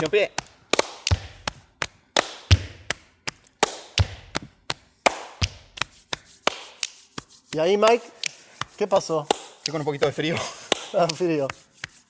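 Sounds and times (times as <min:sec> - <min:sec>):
handclap: 0:00.0 - 0:12.0
chest slaps: 0:00.4 - 0:01.6
finger snap: 0:05.1 - 0:09.8.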